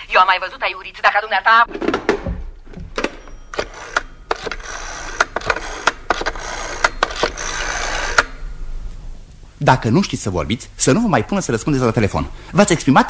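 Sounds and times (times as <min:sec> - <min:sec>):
rotary phone dial clicking: 0:03.0 - 0:08.3.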